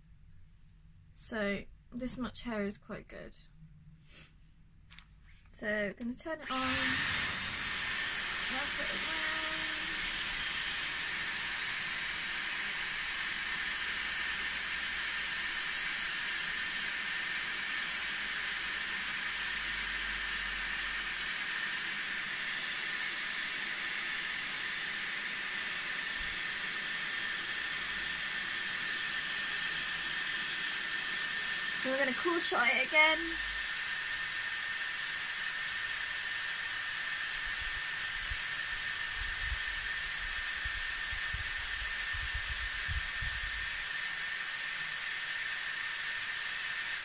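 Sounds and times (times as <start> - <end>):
hair dryer hissing with high whine: 6.3 - 47.0.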